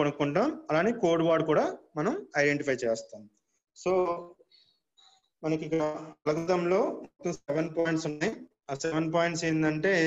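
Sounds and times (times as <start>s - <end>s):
man lecturing: 0.0s - 4.5s, 5.4s - 10.0s.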